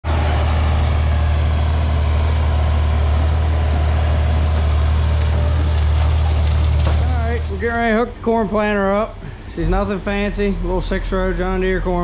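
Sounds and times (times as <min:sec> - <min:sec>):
tractor engine droning: 0:00.0 - 0:12.0.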